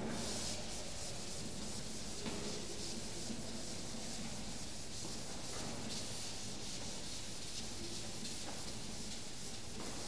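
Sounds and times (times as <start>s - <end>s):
eraser rubbing on chalkboard: 0.2s - 10.0s.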